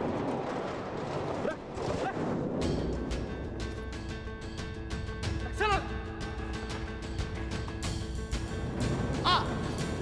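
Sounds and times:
tense background music: 0:00.0 - 0:10.0.

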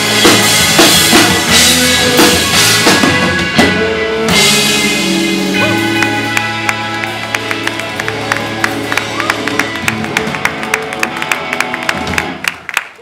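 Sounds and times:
rock band playing: 0:00.0 - 0:12.9
audience clapping: 0:05.7 - 0:13.0.

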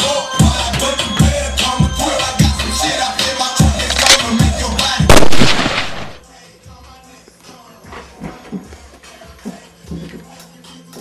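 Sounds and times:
hip hop music with heavy beat: 0:00.0 - 0:11.0
loud gunshot bang: 0:05.1 - 0:06.2.

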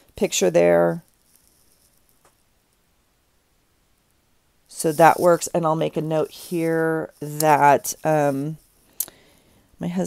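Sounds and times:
paper being handled: 0:04.8 - 0:08.6.

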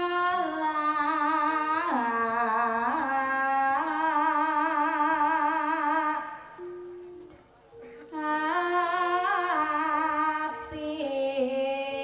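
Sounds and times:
woman singing with vibrato: 0:00.0 - 0:12.0
singer breath: 0:07.7 - 0:08.2.

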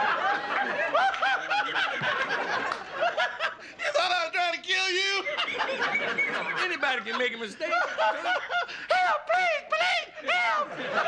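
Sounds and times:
studio audience laughing: 0:00.0 - 0:04.2, 0:04.8 - 0:11.0.

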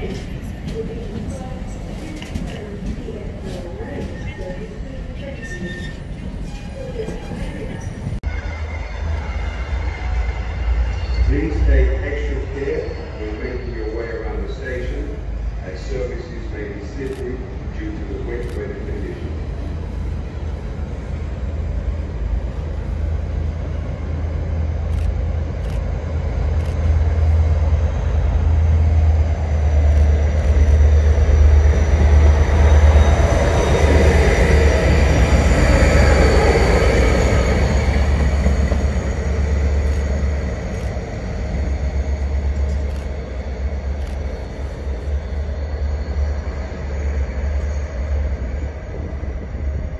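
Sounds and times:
diesel locomotive engine drone: 0:00.0 - 0:49.9
wheel and rail noise: 0:00.0 - 0:49.9.

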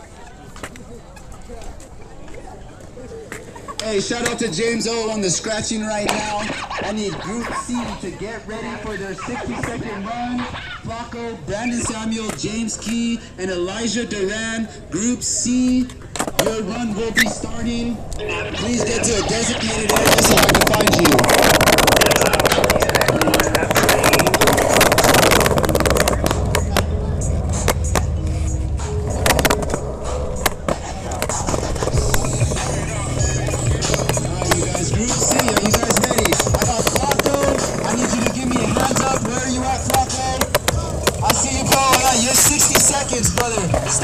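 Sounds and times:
skateboard wheels rolling: 0:00.0 - 0:12.9, 0:15.4 - 0:44.0
faint voices: 0:00.0 - 0:44.0
skateboard clacks: 0:15.8 - 0:17.4, 0:18.7 - 0:28.1, 0:29.0 - 0:44.0
music with bass line over loudspeakers: 0:16.6 - 0:44.0.

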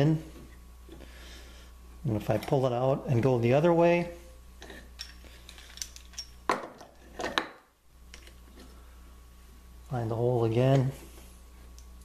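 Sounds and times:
metallic clicks and clinks: 0:05.0 - 0:06.9.

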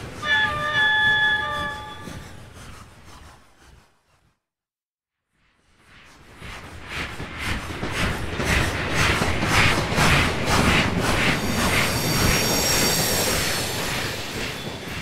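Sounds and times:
train rumbling past: 0:00.0 - 0:03.7, 0:06.1 - 0:15.0
high-pitched wheel squeal: 0:00.2 - 0:02.5.

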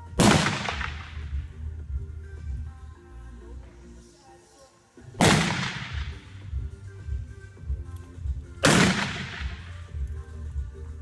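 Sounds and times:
revolver shots echoing: 0:05.2 - 0:06.3, 0:08.6 - 0:09.6.

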